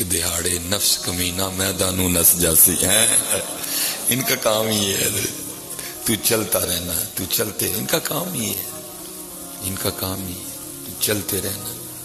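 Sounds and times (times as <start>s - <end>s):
man speaking: 0.0s - 8.7s, 9.6s - 11.8s.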